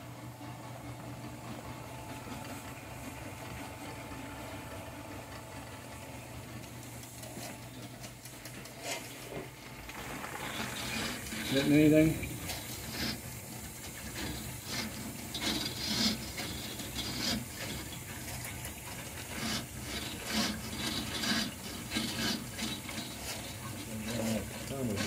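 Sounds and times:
drain cable scraping inside pipe: 8.6 - 25.0.

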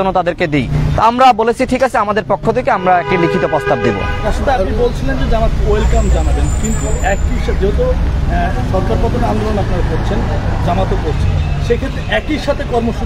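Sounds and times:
people talking: 0.0 - 13.0
road traffic rumble: 0.0 - 13.0
motor vehicle running nearby: 5.8 - 13.0.

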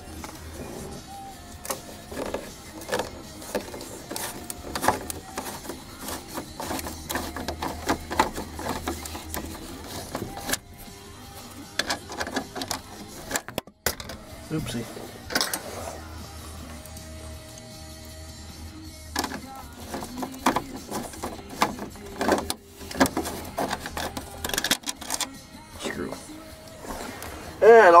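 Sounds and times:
background music: 0.0 - 28.0
screwdriver clicking on metal: 19.2 - 25.4.

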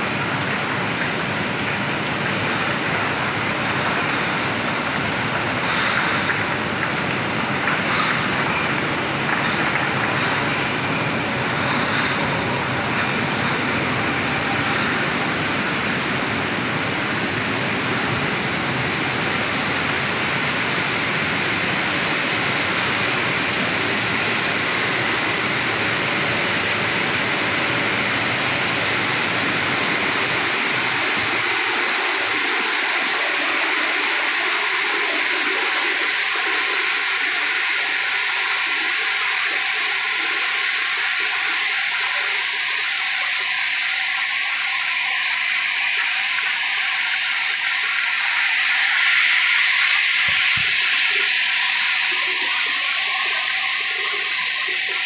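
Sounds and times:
high steady hiss: 0.0 - 55.0
rushing water spray: 0.0 - 55.0.

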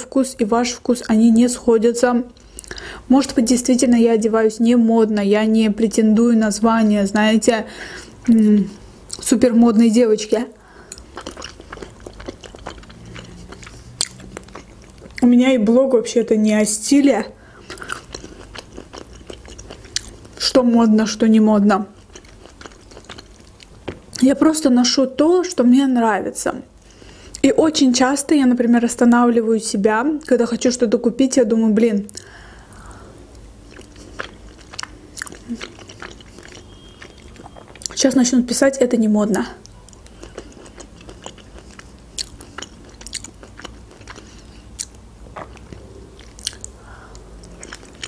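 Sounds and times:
close chewing: 10.9 - 15.3, 17.6 - 20.5, 21.9 - 24.0, 33.7 - 38.0, 39.6 - 48.0
wet mouth clicks: 44.8 - 48.0.

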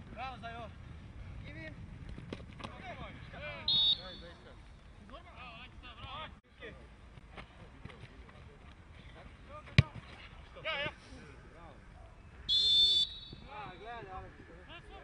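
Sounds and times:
referee's whistle: 3.6 - 4.3, 12.5 - 13.8.

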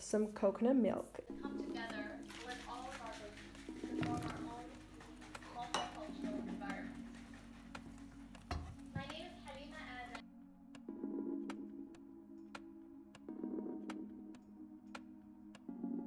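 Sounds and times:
background music with held chords: 0.0 - 16.0
utensils clinking on frying pan: 5.4 - 6.4.

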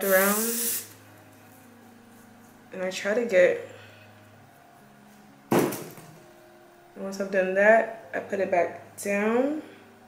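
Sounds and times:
aerosol spray burst: 0.0 - 1.0.

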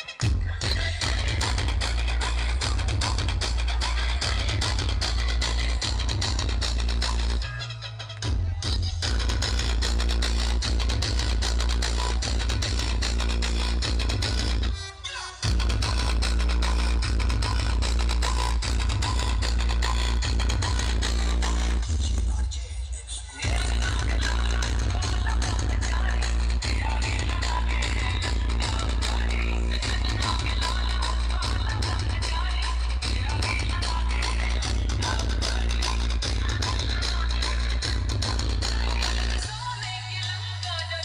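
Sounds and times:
electronic dance music heavy bass: 0.0 - 41.0.

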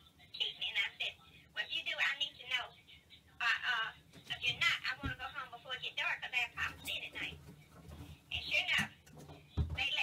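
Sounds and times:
person talking over phone speaker: 0.0 - 10.0.

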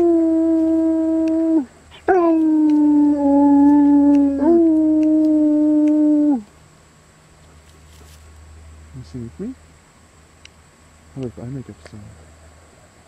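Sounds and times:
husky howling: 0.0 - 6.5.

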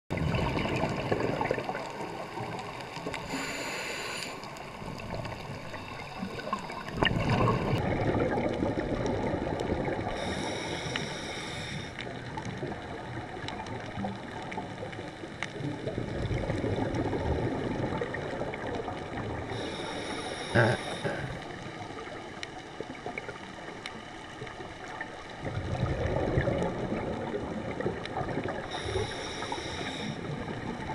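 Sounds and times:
underwater water noise: 0.1 - 30.9
faint underwater clicks: 0.2 - 30.9
hiss with high whine: 3.3 - 4.6, 10.2 - 12.0, 19.6 - 21.3, 28.8 - 30.3.

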